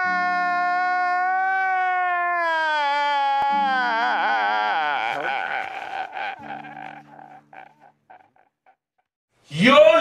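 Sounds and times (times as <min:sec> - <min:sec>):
man crying and sobbing: 0:00.0 - 0:08.5.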